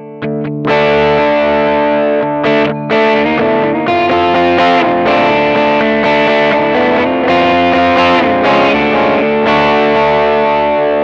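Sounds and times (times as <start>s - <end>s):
electric guitar chords: 0.0s - 11.0s.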